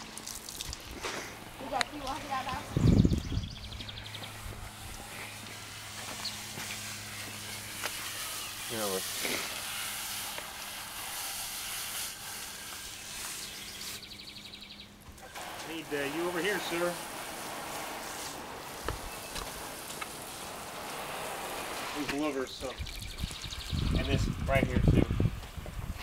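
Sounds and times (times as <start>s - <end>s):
hose water hissing and splashing: 0.0s - 14.4s, 15.0s - 26.0s.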